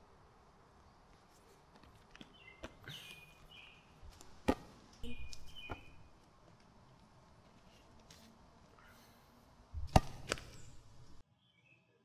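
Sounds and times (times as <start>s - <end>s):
tetherball being struck: 9.8s - 10.8s.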